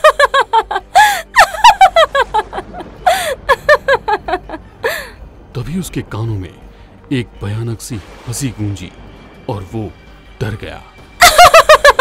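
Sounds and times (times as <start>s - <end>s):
high-pitched laugh: 0.0s - 4.6s, 11.2s - 12.0s.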